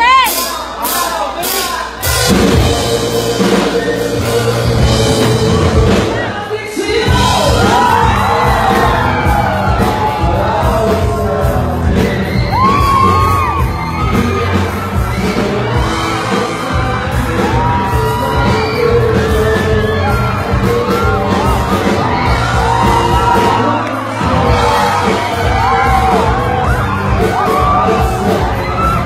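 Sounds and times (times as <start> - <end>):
crowd shouting and whooping: 0.0 - 29.0
man singing lead vocal: 0.0 - 29.0
pop-rock band playing live: 0.0 - 29.0.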